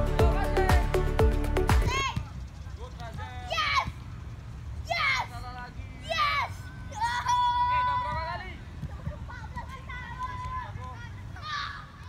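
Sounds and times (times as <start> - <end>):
child shouting: 1.8 - 2.3, 3.4 - 4.0, 4.8 - 5.4, 6.0 - 8.4, 9.3 - 12.0
children calling out: 9.4 - 12.0.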